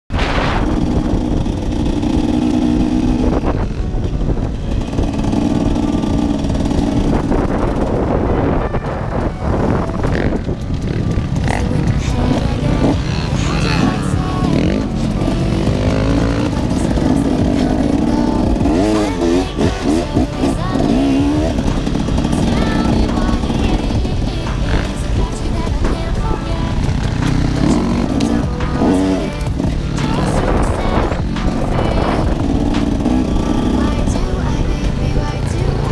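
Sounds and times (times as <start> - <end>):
dirt bike engine running: 0.1 - 35.9
wind on microphone: 0.1 - 35.9.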